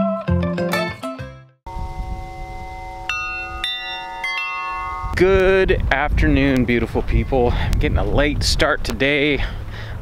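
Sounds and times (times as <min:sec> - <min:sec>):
metal wind chimes ringing: 0:01.7 - 0:05.7, 0:07.1 - 0:07.6.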